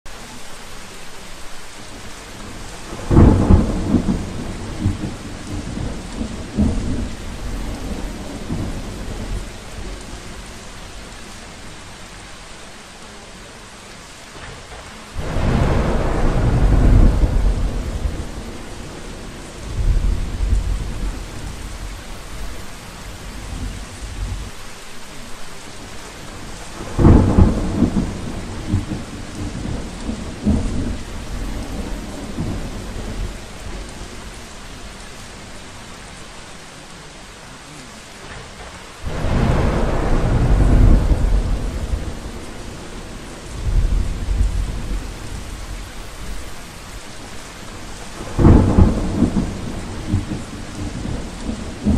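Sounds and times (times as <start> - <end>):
steady rain: 0.0 - 51.9
thunder rumbling: 2.1 - 12.2, 14.6 - 24.6, 25.8 - 36.3, 38.4 - 51.9.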